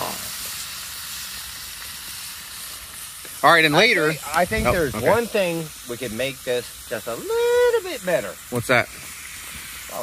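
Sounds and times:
steaks sizzling in a skillet: 0.0s - 10.0s.

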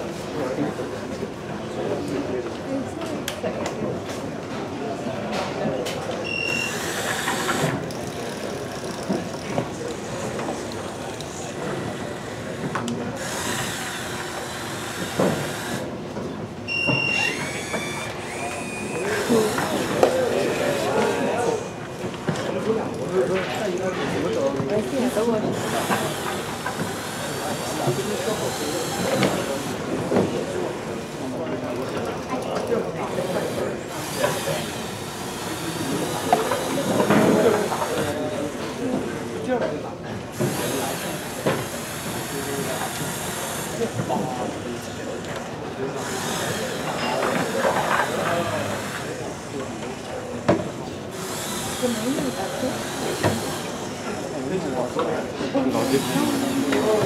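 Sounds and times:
noisy room background: 0.0s - 57.0s
people chattering: 0.0s - 57.0s
robot drive motors whirring: 6.3s - 7.9s, 11.8s - 15.9s, 16.7s - 21.1s, 24.8s - 31.1s, 46.0s - 49.4s, 50.8s - 55.0s, 55.7s - 57.0s.

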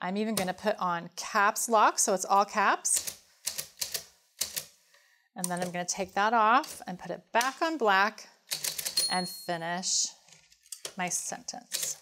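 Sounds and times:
typewriter keys clacking: 8.5s - 9.1s.

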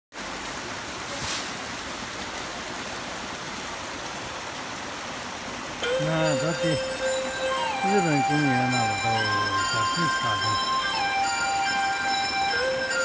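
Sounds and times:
waterfall splashing over rocks: 0.1s - 13.0s.

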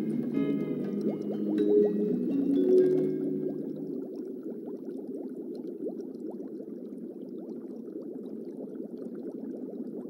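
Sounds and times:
music cue: 0.0s - 4.0s
aquarium air bubbles gurgling: 0.0s - 10.0s.

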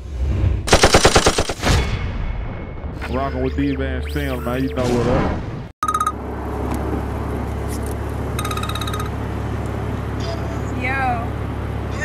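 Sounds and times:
automatic gunfire burst: 0.7s - 1.6s.

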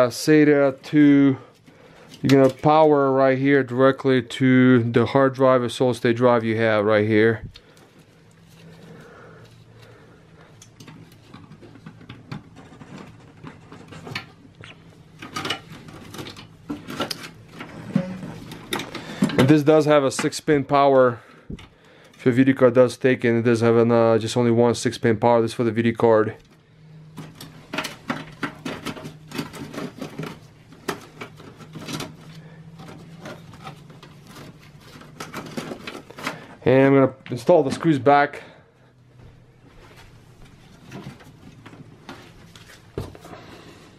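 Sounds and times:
gloved hands rustling cables: 0.7s - 3.0s, 7.2s - 20.8s, 26.4s - 38.2s, 39.5s - 43.9s.

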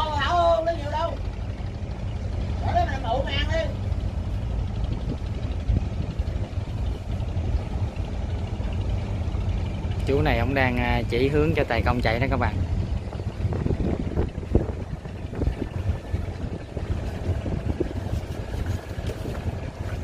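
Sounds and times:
boat diesel engine droning: 0.0s - 20.0s.

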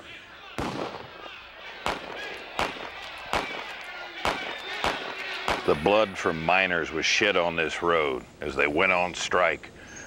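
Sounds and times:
faint voices: 0.0s - 9.8s
gunshots: 0.6s - 5.8s.

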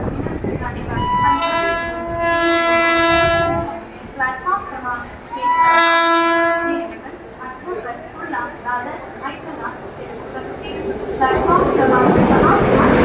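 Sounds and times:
train horn blasts: 1.0s - 4.0s, 5.3s - 7.0s.

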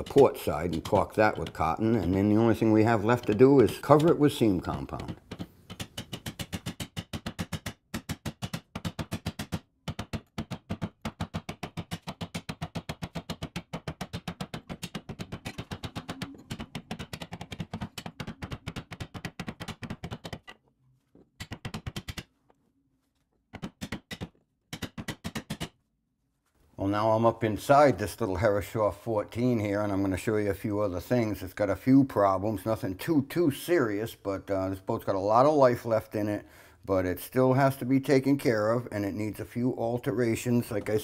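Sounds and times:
wooden mallet striking caulking iron: 0.0s - 20.6s, 23.5s - 25.8s.

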